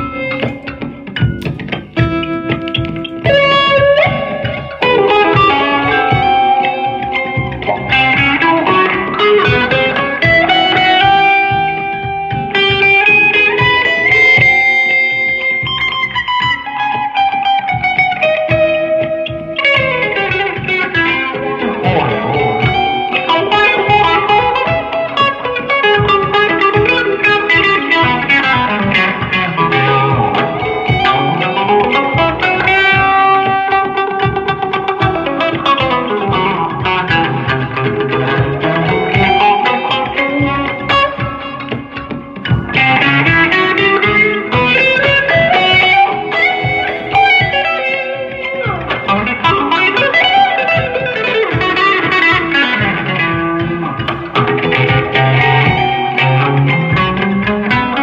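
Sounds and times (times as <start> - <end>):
looped bass line: 0.0 - 17.0, 17.7 - 58.0
electric guitar melodic lines: 0.0 - 58.0.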